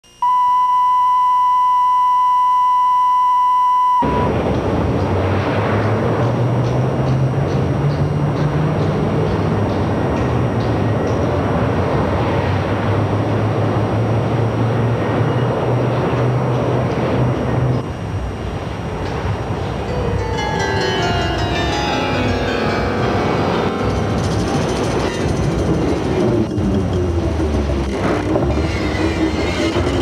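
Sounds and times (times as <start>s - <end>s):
noisy droning instrumental: 18.5s - 30.0s
test tone: 19.9s - 26.6s.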